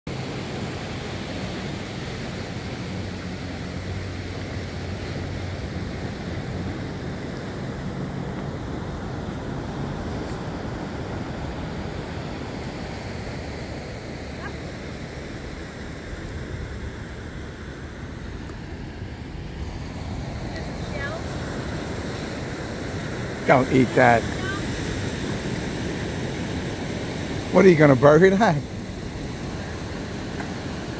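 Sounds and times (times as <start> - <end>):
ocean surf rushing: 0.1 - 30.9.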